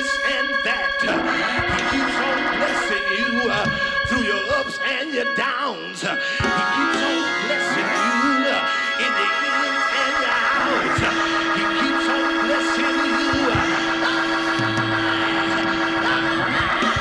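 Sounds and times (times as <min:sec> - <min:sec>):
organ sustained chords: 0:00.0 - 0:17.0
low bass notes: 0:10.5 - 0:17.0.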